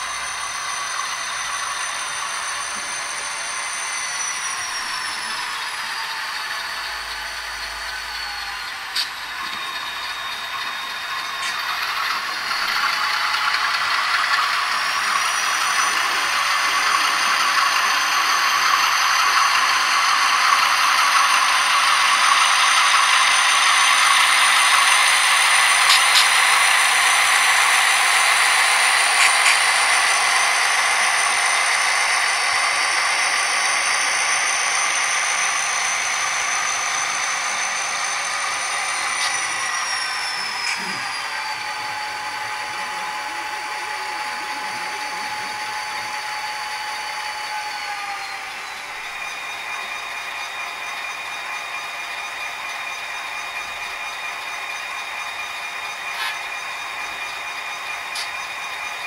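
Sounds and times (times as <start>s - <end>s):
model train motor whine: 0.0s - 59.0s
model train rattling past: 0.0s - 59.0s.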